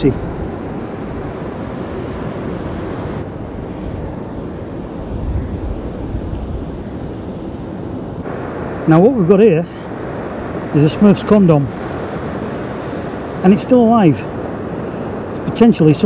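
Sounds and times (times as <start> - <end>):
surf: 0.0 - 16.0
wind on microphone: 0.0 - 16.0.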